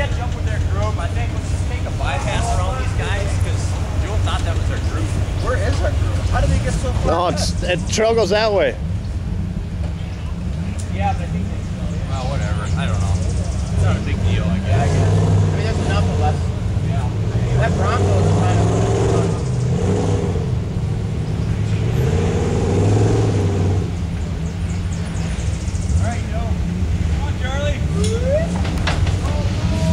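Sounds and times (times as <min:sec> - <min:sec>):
car engine pulling at low speed: 0:00.0 - 0:29.9
people's voices: 0:00.0 - 0:29.9.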